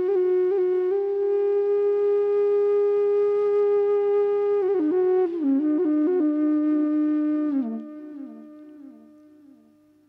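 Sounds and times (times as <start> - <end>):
flute holding long note: 0.0 - 10.0.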